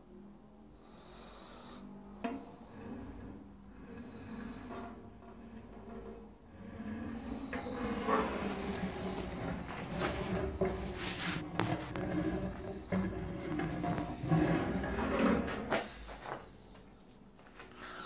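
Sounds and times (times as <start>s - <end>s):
carriage rolling on steel rail: 4.0s - 16.4s.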